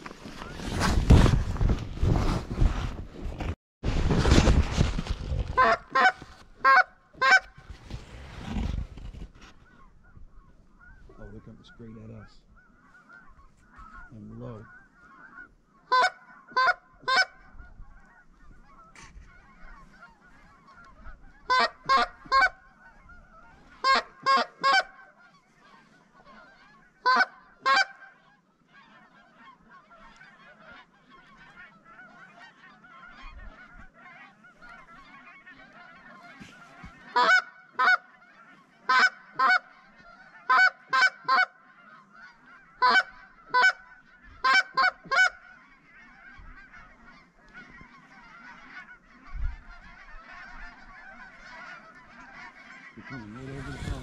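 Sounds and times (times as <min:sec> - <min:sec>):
geese honking: 0:05.4 - 0:54.0.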